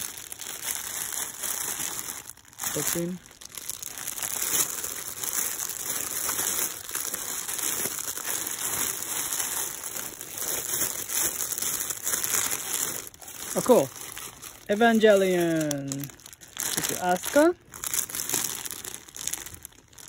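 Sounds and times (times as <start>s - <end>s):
plastic bags crinkling: 0.0s - 20.0s.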